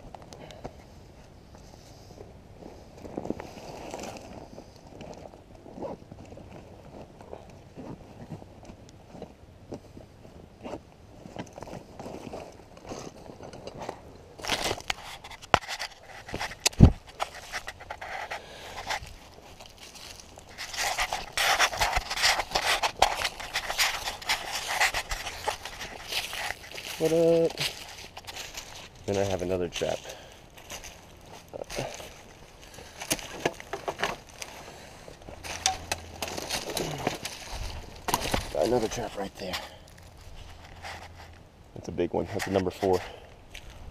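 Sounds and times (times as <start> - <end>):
backpack rustling on dry leaves: 11.0 - 41.4
twigs cracking: 11.4 - 41.4.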